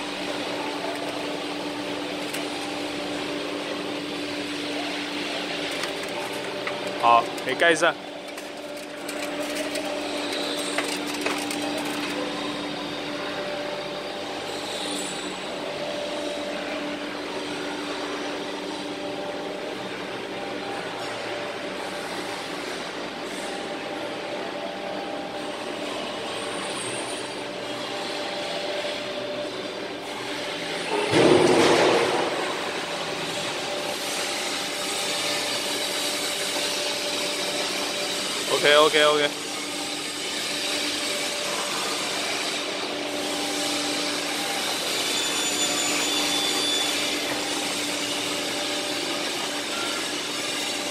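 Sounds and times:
furnace machinery humming: 0.0 - 50.9.

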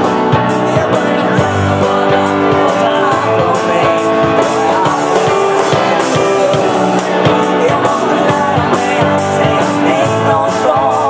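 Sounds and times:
bass guitar: 0.0 - 11.0
drum kit beat: 0.0 - 11.0
electric guitar: 0.0 - 11.0
piano: 0.0 - 11.0.

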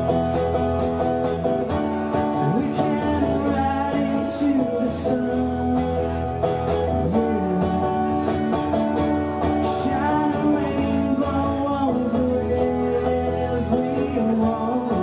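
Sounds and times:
strummed acoustic guitar: 0.0 - 15.0
man singing: 2.2 - 8.3, 9.4 - 15.0.

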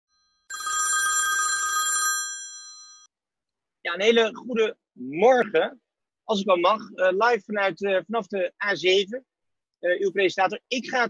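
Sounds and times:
telephone bell ringing: 0.1 - 3.1.

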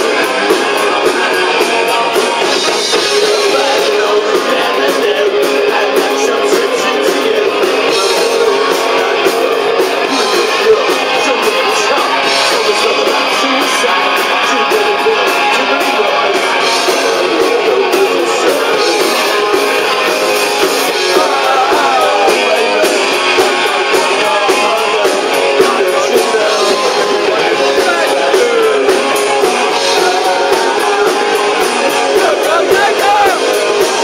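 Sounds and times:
drums and cymbals: 0.0 - 34.0
electric guitars strummed hard: 0.0 - 34.0.

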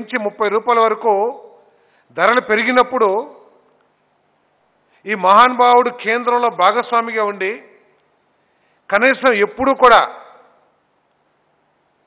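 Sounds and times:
man speaking: 0.0 - 3.5, 8.9 - 10.5.

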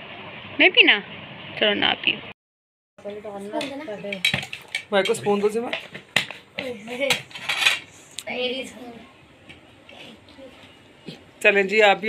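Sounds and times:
metal spoons clinking on plates: 3.6 - 6.3, 7.1 - 7.9.

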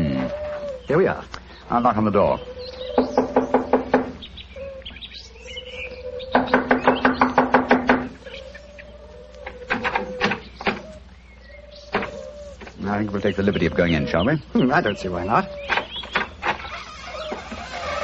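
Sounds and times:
bird calling: 0.0 - 18.0
knocking on a door: 3.0 - 4.2, 6.4 - 8.2.

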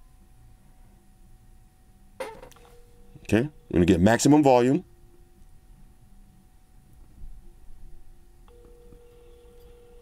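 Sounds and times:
phone ringback tone: 2.6 - 3.7, 8.5 - 10.0.

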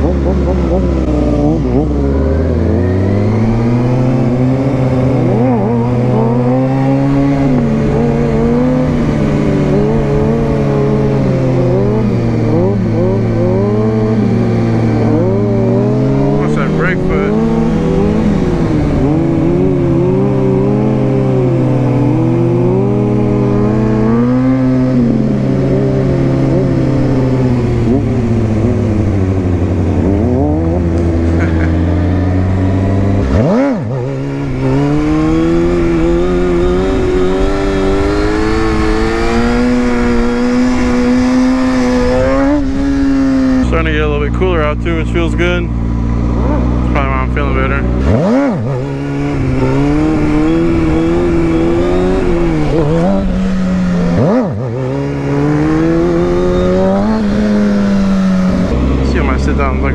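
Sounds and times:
motorcycle engines idling and revving: 0.0 - 59.9.

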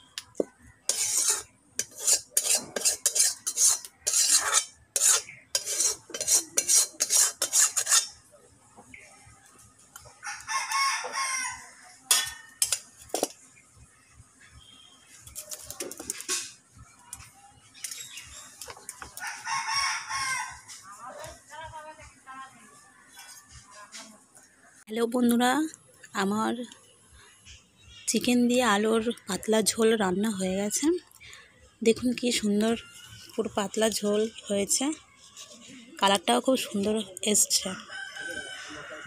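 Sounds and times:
spoon scraping metal pot: 0.9 - 8.2
rooster crowing: 10.2 - 12.5, 19.2 - 20.7, 37.8 - 39.0.

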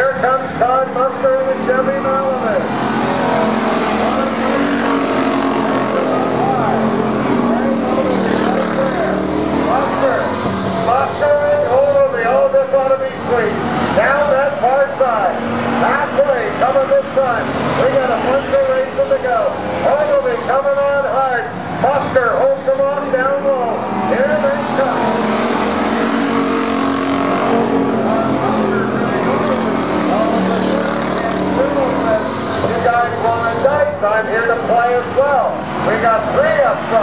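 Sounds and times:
racing car engines: 0.0 - 37.0.

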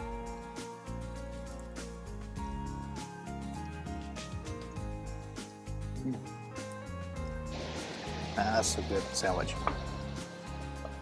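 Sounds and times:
background music of held notes: 0.0 - 11.0.

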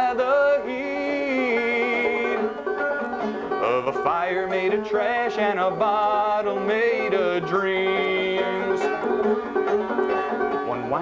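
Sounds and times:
banjo picking: 0.0 - 11.0
person singing folk song: 0.0 - 11.0.

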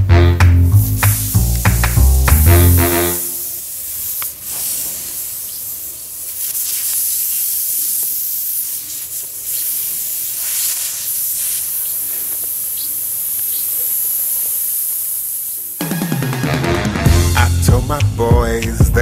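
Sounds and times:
music with bass line: 0.0 - 3.4, 15.8 - 19.0
air hissing from tyre: 0.7 - 15.8.

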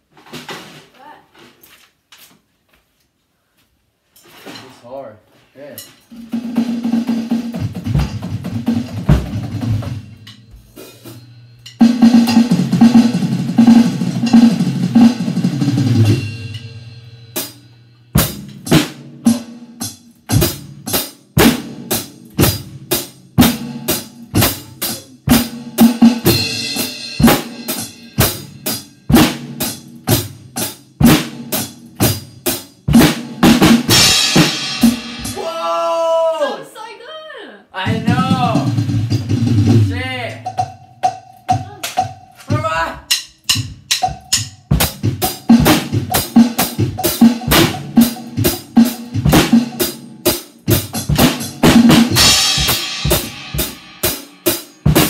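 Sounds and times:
drum kit playing: 0.0 - 1.2, 5.6 - 36.8, 37.7 - 55.0.

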